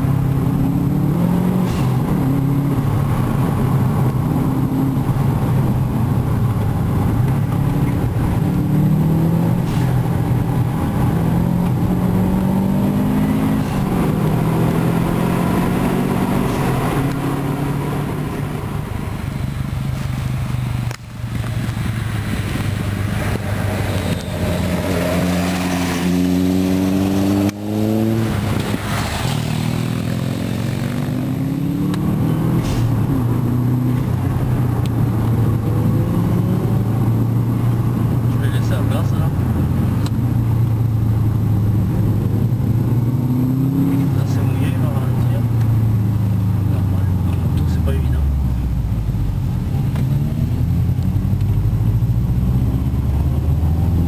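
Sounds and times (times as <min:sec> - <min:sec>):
car engine accelerating hard: 0:00.0 - 0:54.0.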